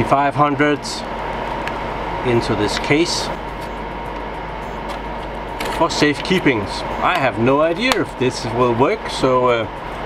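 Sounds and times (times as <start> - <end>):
whirring hum: 0.0 - 10.0
person speaking: 5.6 - 9.5.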